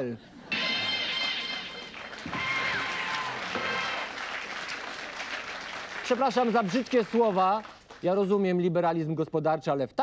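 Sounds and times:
audience applauding: 0:01.0 - 0:08.2.

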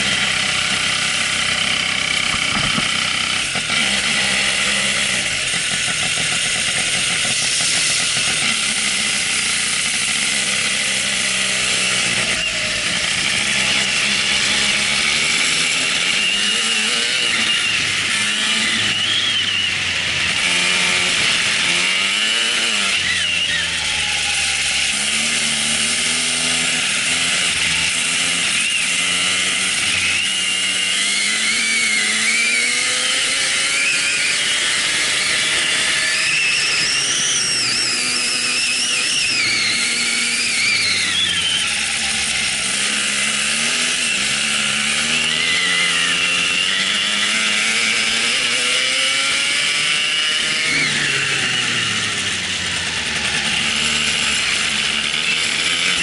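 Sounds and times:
kart engine revving: 0:00.0 - 0:56.0.

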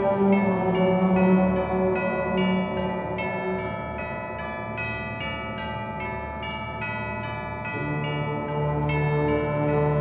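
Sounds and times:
bell-like notes: 0:00.0 - 0:10.0.

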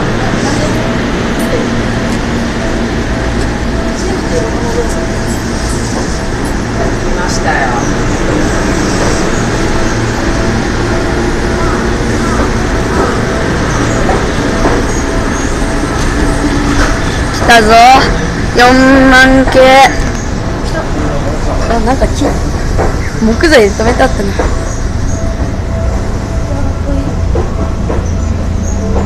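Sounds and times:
train wheels rumbling on rail: 0:00.0 - 0:29.0.

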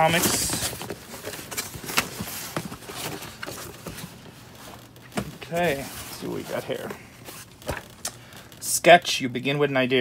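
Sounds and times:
cardboard and paper rustling: 0:00.0 - 0:08.0.

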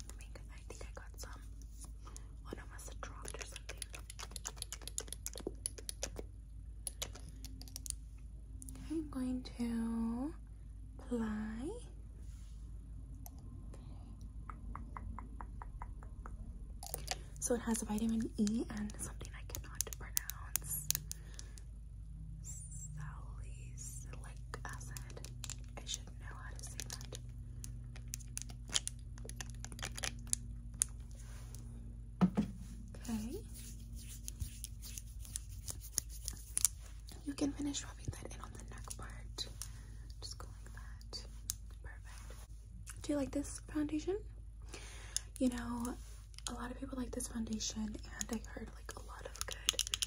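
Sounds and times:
person whispering: 0:00.0 - 0:04.0, 0:16.9 - 0:21.0, 0:22.4 - 0:27.1, 0:32.9 - 0:34.6, 0:37.1 - 0:42.4, 0:45.4 - 0:49.9
faint low hum: 0:00.0 - 0:50.0
fingernails tapping plastic bottle: 0:32.2 - 0:32.6
nails tapping glass dropper bottle: 0:49.4 - 0:50.0.

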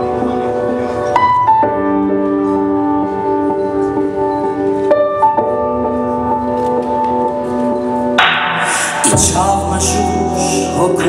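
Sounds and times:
electronic keyboard sustained chords: 0:00.0 - 0:11.0.

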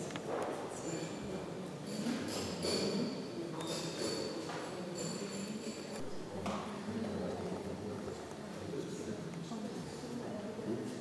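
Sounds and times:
echoing murmur of voices: 0:00.0 - 0:11.0.

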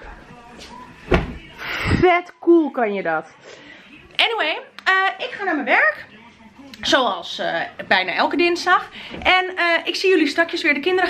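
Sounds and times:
child thudding onto sofa: 0:01.1 - 0:01.5.

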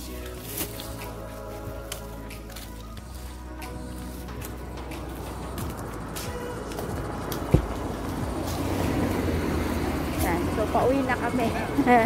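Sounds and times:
car passing by: 0:04.9 - 0:12.0
woman's voice: 0:10.1 - 0:12.0.

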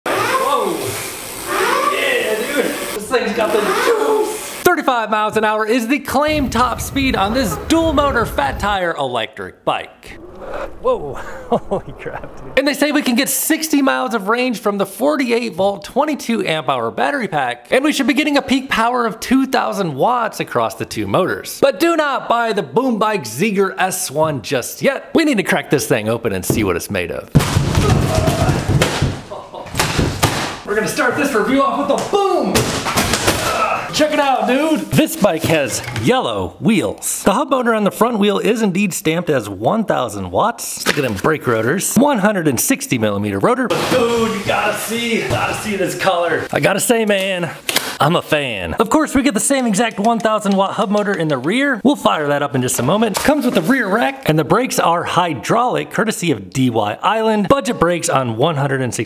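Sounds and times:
cardboard flaps thumping: 0:27.4 - 0:30.6, 0:32.6 - 0:33.6.

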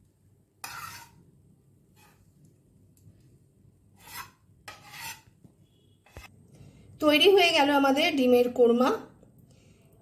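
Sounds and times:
rasping scrapes: 0:00.6 - 0:01.2, 0:04.0 - 0:05.3.

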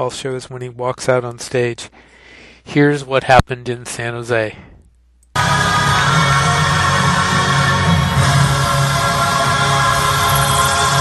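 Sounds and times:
concert music: 0:05.4 - 0:11.0.

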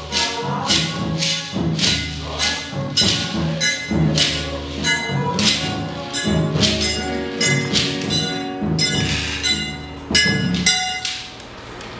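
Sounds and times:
hand drums: 0:00.0 - 0:11.3
acoustic guitar: 0:00.0 - 0:11.8
ringing metallic bell strikes: 0:02.9 - 0:11.2.

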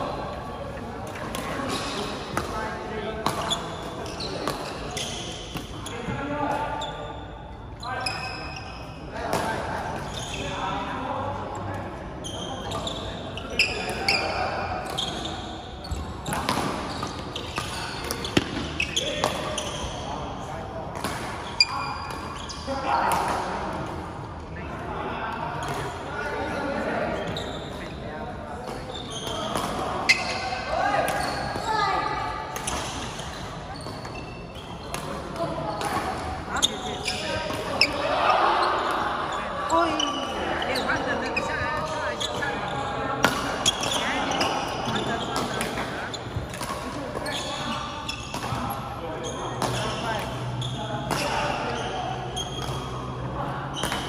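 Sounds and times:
people's voices in echoing hall: 0:00.0 - 0:54.0
shoe squeaks on court floor: 0:03.3 - 0:09.0, 0:10.0 - 0:10.7, 0:12.2 - 0:20.2, 0:21.1 - 0:22.9, 0:27.1 - 0:28.0, 0:28.6 - 0:54.0.

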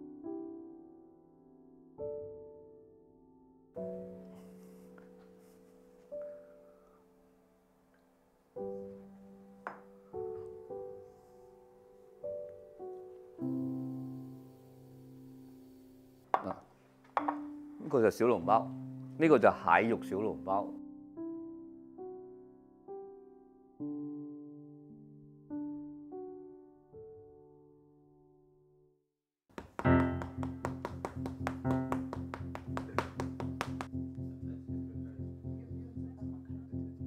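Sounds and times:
faint piano music: 0:00.0 - 0:29.0, 0:29.7 - 0:37.0
quick ticking beat: 0:29.6 - 0:33.9.

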